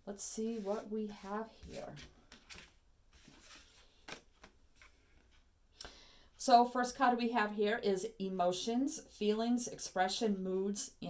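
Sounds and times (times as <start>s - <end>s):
cards clicking on tabletop: 4.1s - 5.0s.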